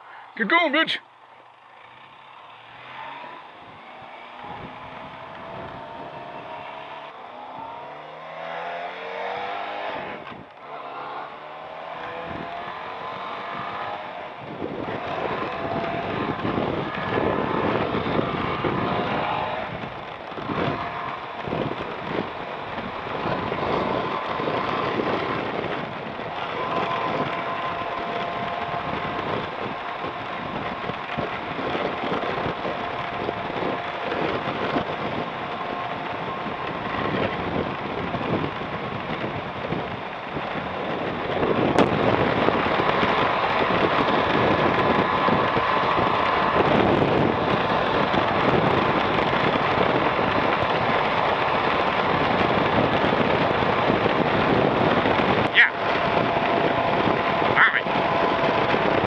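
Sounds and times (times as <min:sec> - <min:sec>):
motorcycle engine accelerating: 0:01.1 - 0:59.0
wind rush on microphone: 0:03.1 - 0:59.0.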